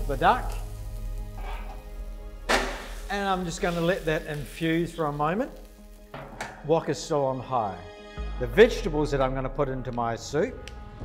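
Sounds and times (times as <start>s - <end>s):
food sizzling in a wok: 0.0s - 6.4s
metal tongs scraping a wok: 1.2s - 2.0s.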